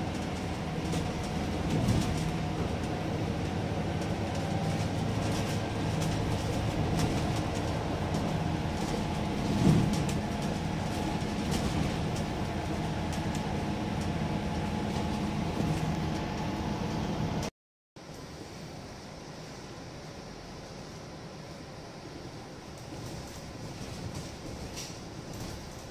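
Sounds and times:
bus engine hum: 0:00.0 - 0:25.9.

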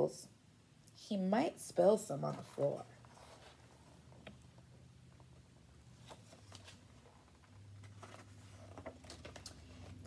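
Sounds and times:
book pages rustling: 0:02.3 - 0:10.0.

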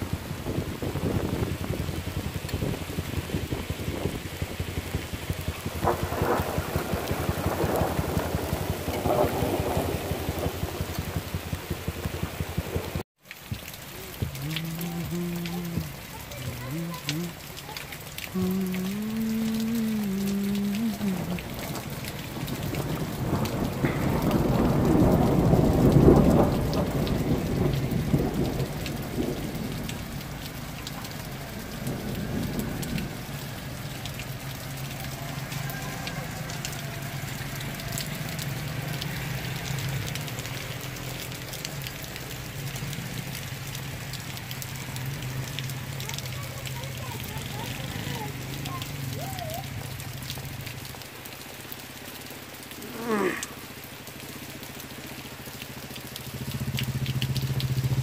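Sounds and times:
steady rain falling: 0:00.0 - 0:58.0.

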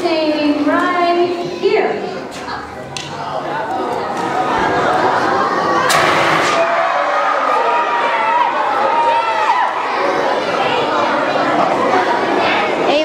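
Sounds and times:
children shouting and cheering: 0:04.0 - 0:12.9.

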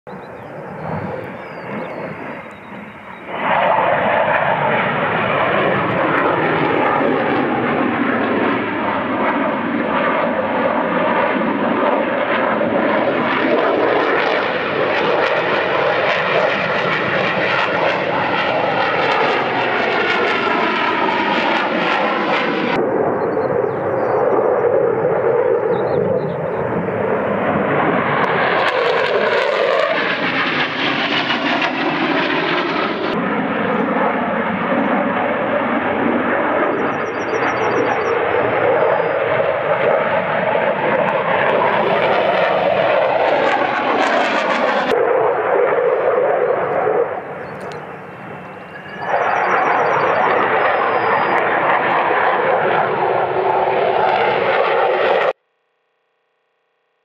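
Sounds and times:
jet engine roaring: 0:00.1 - 0:55.4.

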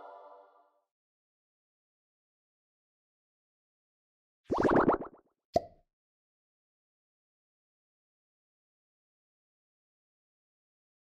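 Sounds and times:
cartoon rising bloops: 0:04.5 - 0:05.2.

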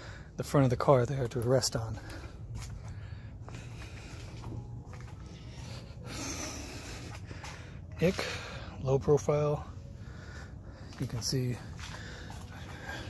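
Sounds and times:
person breathing close to microphone: 0:00.0 - 0:00.4, 0:01.9 - 0:08.8, 0:09.6 - 0:11.0, 0:11.6 - 0:13.0.

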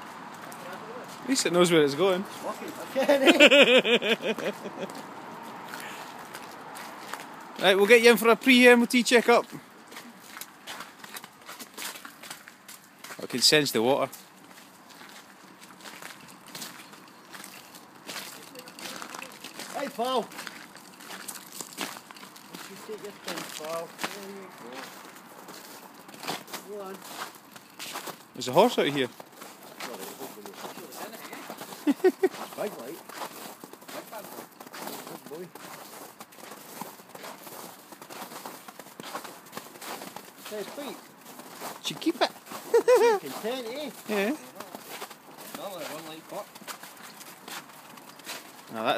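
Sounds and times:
footsteps on slushy tarmac: 0:00.0 - 0:48.9.

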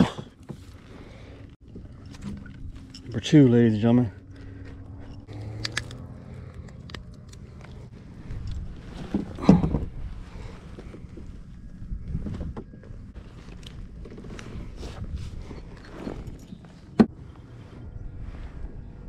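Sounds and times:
low rumble: 0:00.8 - 0:19.0.

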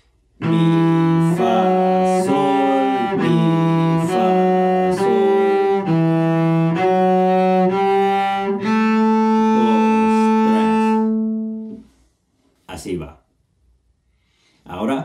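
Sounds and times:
solo cello bowing: 0:00.4 - 0:11.9.

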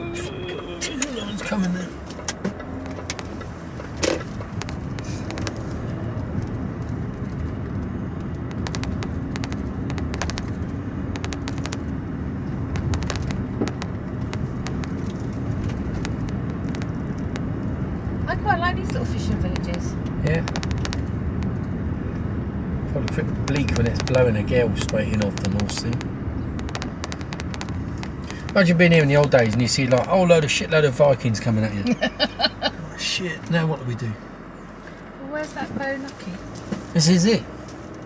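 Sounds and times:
vehicle engine and road noise: 0:00.0 - 0:38.0
sharp knock: 0:11.2 - 0:11.8, 0:12.7 - 0:15.0, 0:20.4 - 0:21.1, 0:24.8 - 0:28.6.

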